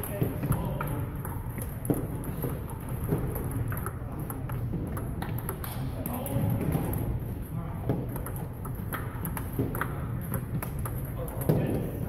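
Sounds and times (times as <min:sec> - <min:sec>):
ping pong ball clicking off paddles: 0:00.0 - 0:12.0.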